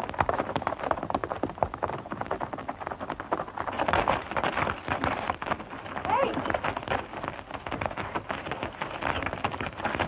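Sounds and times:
hooves galloping on hard ground: 0.0 - 10.0.

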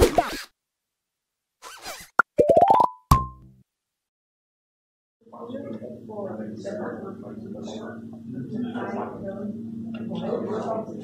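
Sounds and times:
rising run of pitched notes: 2.3 - 3.3.

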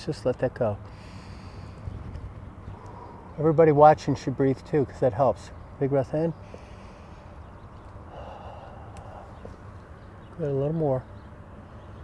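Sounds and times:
deep exhale: 2.7 - 3.4, 8.1 - 9.5.

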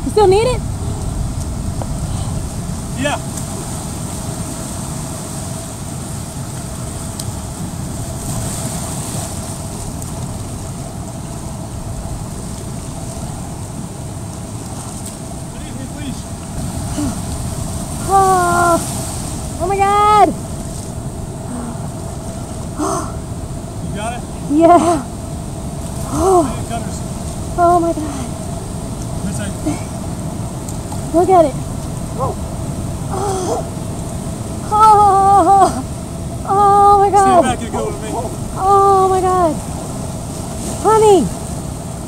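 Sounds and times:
wind on microphone: 0.0 - 15.0, 29.8 - 42.0
shallow surf: 0.0 - 42.0.

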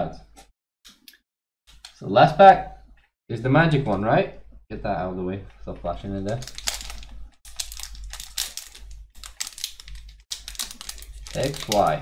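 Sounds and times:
foil wrapper crinkling: 6.2 - 12.0.

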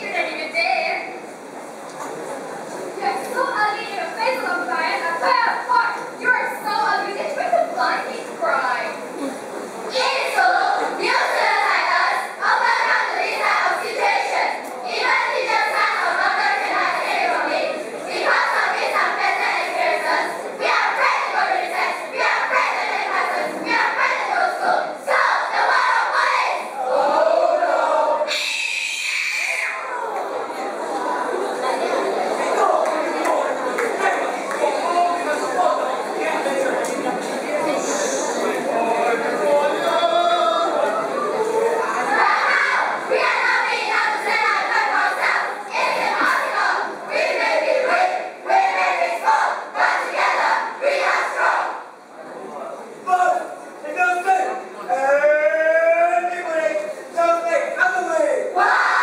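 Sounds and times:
young voices speaking in unison: 3.0 - 55.7, 56.8 - 59.0.

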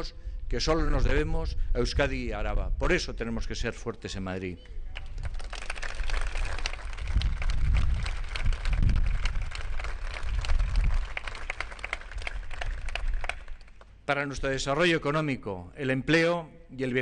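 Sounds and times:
audience applauding: 5.0 - 13.8.

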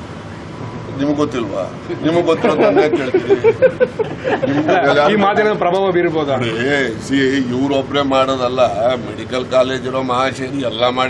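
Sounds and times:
man talking: 1.0 - 3.7, 4.4 - 11.0.

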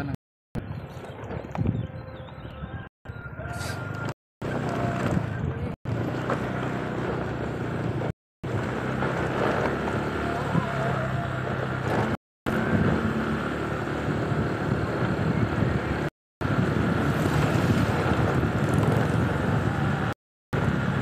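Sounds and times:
road and wind noise: 0.0 - 21.0
vehicle engine running: 3.9 - 21.0.

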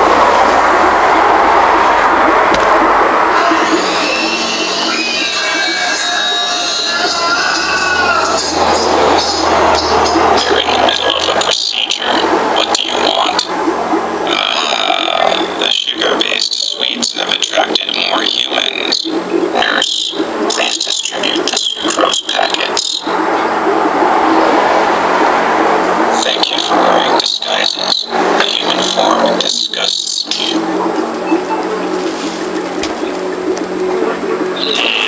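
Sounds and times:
distorted alien voice effect: 0.0 - 35.0
rushing noise: 0.0 - 35.0
constant low hum: 7.1 - 35.0
voices in short phrases: 19.6 - 23.0, 26.2 - 30.6.

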